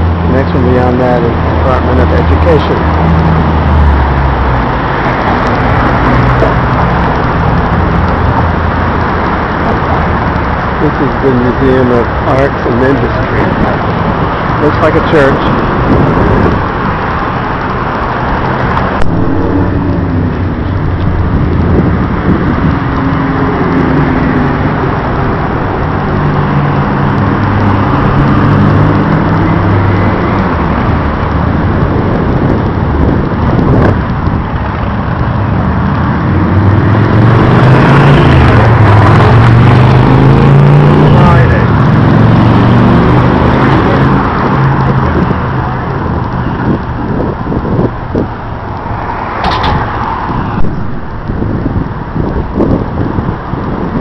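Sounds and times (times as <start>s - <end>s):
vehicles driving past: 0.0s - 54.0s.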